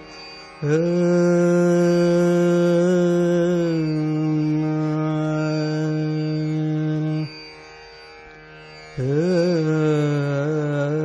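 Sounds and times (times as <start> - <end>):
tanpura drone: 0.0 - 11.0
man singing without words: 0.6 - 7.4, 9.0 - 11.0.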